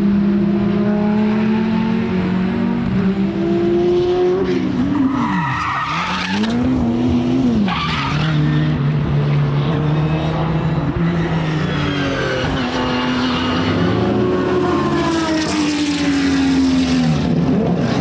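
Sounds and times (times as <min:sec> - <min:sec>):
racing car engine revving: 0:00.0 - 0:04.9
tyre squeal: 0:04.9 - 0:06.7, 0:07.6 - 0:08.8.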